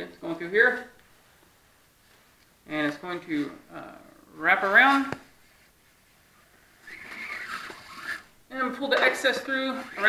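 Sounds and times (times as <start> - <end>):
rustling of cord and fabric: 0.7 - 3.6, 4.5 - 8.3.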